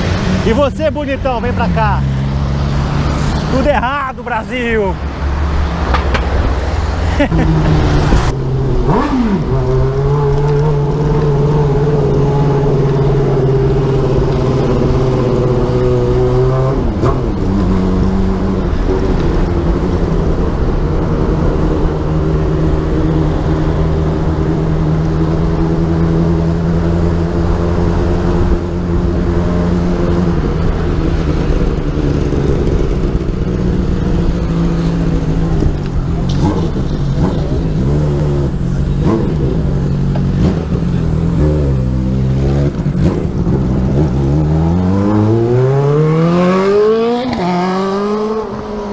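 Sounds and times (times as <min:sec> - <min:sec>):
wind rushing over camera: 0:05.0 - 0:26.0.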